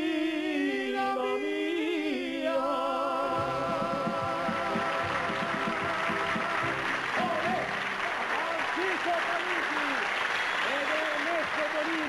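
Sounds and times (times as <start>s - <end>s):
audience applauding: 3.8s - 12.0s.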